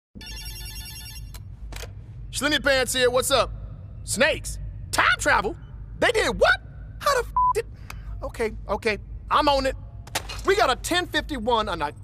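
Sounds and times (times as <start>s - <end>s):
telephone bell ringing: 0.2s - 1.3s.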